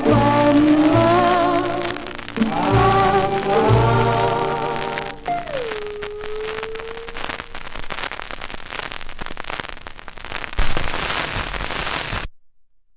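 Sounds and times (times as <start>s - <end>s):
music held note: 0.0s - 7.6s
record crackle and hiss: 0.0s - 12.3s.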